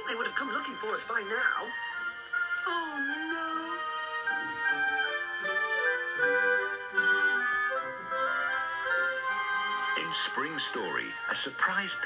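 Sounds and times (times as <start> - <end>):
light instrumental music: 0.0 - 12.0.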